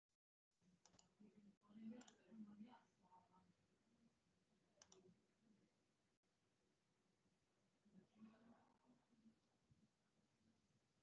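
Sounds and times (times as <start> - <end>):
faint clicks: 4.8 - 5.1.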